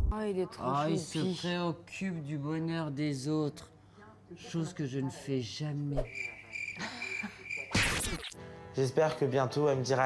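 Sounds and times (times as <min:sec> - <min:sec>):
crickets chirping: 0:06.0 - 0:08.4
electronic glitch noise: 0:07.7 - 0:08.4.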